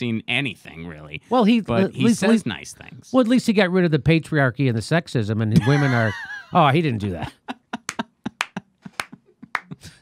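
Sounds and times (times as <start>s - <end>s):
person clapping hands: 7.8s - 10.0s.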